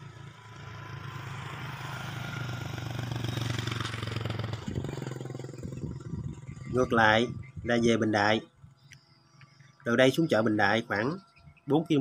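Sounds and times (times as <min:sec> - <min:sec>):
vehicle engine passing: 0:00.0 - 0:08.4
road noise: 0:00.0 - 0:12.0.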